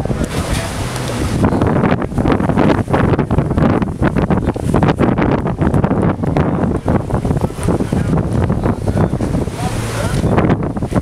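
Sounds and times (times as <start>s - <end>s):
gusty wind buffeting microphone: 0.0s - 11.0s.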